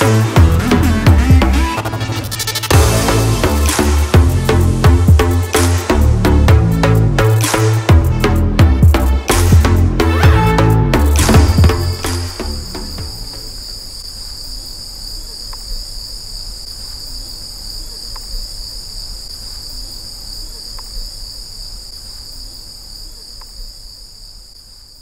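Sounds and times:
high-pitched insect drone: 11.4 - 17.9.

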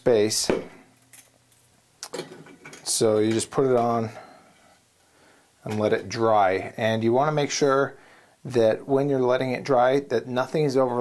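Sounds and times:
wire cooling racks clinking: 1.0 - 4.1.

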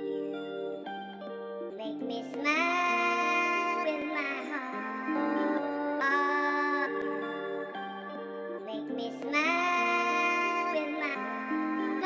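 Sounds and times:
high singing voice: 0.0 - 12.0
soft sustained accompaniment: 0.0 - 12.0.

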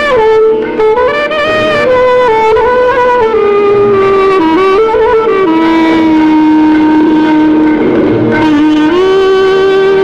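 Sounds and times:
clarinet holding a long note: 0.0 - 10.0.

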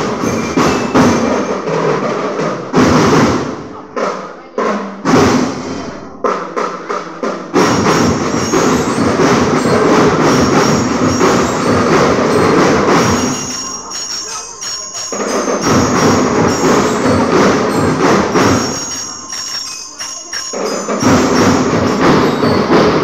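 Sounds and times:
marching band drumming: 0.0 - 23.0.

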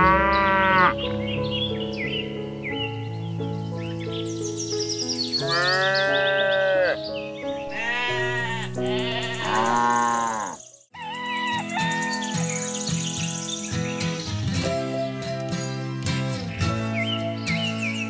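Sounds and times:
drawn-out farm animal calls: 0.0 - 1.0, 5.4 - 12.4
background music: 0.0 - 18.0.

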